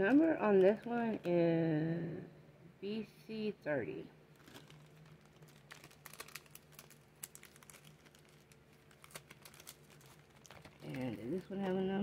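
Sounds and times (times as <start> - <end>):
packaging crinkling: 4.3 - 12.0.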